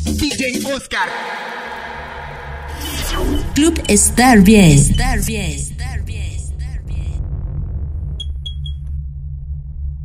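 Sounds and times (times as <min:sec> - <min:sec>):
deep electronic bass drone: 0:02.7 - 0:10.0.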